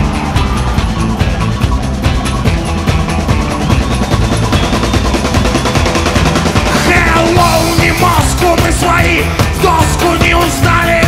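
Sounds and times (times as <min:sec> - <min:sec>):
fast driving drum beat: 0:00.0 - 0:11.0
rock band playing: 0:00.0 - 0:11.0.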